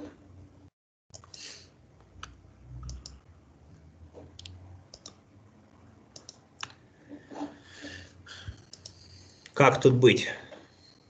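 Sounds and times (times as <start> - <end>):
computer mouse clicking: 1.2 - 3.2, 4.2 - 5.2, 6.1 - 6.8, 8.5 - 9.0.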